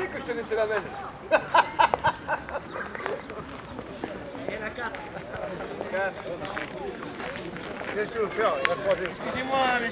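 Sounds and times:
men talking outdoors: 0.0s - 9.9s
footsteps on loose gravel: 3.0s - 9.9s.

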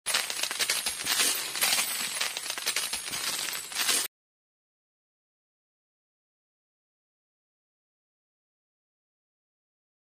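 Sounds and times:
rapid metallic jingling: 0.1s - 4.1s.

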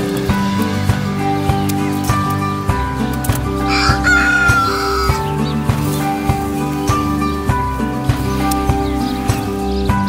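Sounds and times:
background music: 0.0s - 10.0s
rooster crowing: 3.7s - 5.3s.

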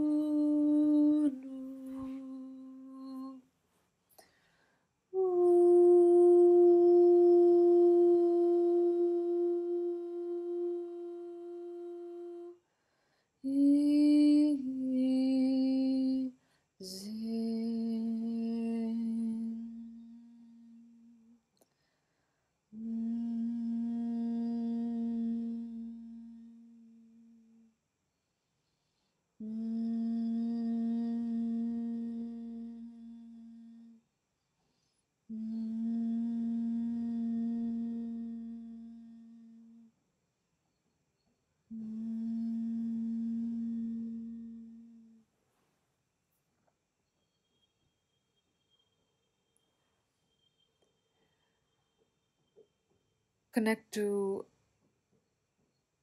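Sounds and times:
woman chanting a long note: 5.2s - 12.6s, 41.7s - 45.2s.

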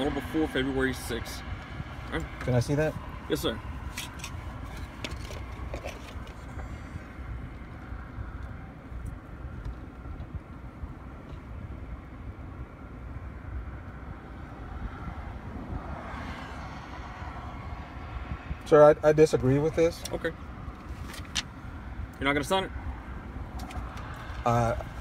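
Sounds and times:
roadside traffic noise: 0.0s - 25.0s.

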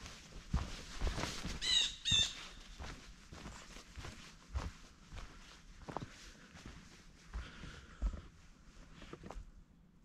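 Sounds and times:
footsteps on dirt trail: 0.0s - 9.6s
bird calls: 1.6s - 2.8s.

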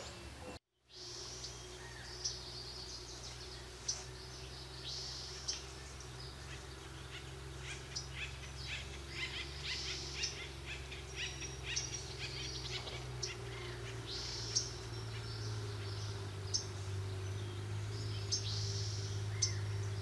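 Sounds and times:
songbirds chirping and trilling: 0.0s - 20.0s
steady low hum: 0.0s - 20.0s.

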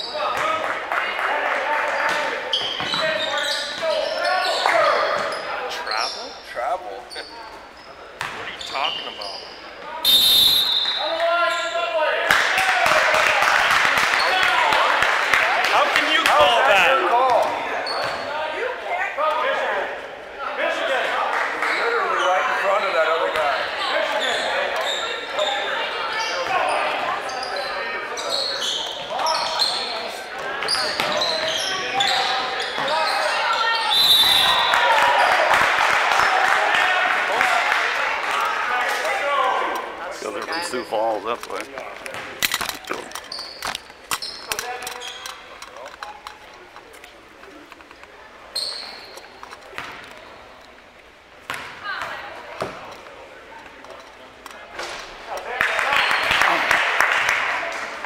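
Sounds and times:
voices echoing in hall: 0.0s - 58.0s
referee's whistle: 8.5s - 11.8s, 30.7s - 34.9s.

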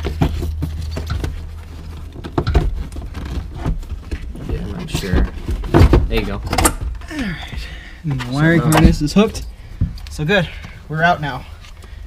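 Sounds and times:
plastic knocks and scrapes: 0.0s - 7.0s.

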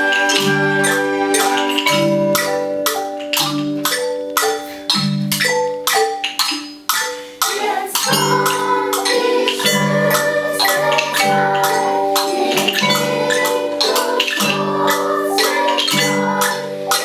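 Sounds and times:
xylophones playing quick tune: 0.0s - 17.0s.

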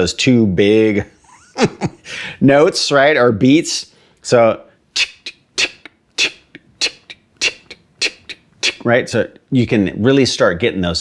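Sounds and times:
man making hissing hi-hat sounds: 4.9s - 9.4s.

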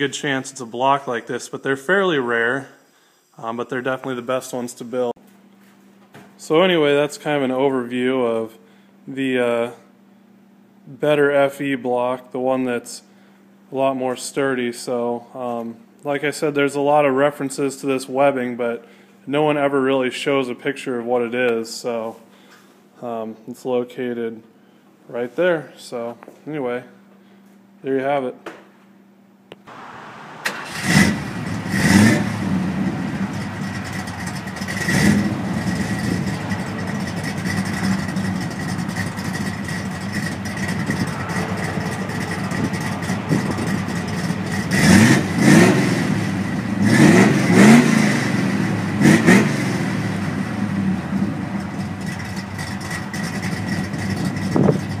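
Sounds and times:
car engine idling: 29.7s - 55.0s
car engine starting and revving: 29.7s - 55.0s.

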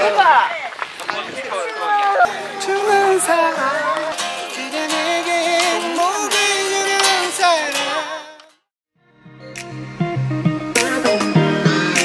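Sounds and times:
strummed acoustic guitar: 2.3s - 8.4s
man singing: 2.3s - 8.5s, 10.7s - 12.0s.

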